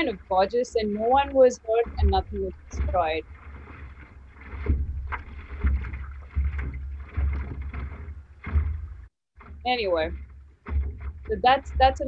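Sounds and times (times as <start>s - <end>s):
water lapping against board: 0.0s - 12.0s.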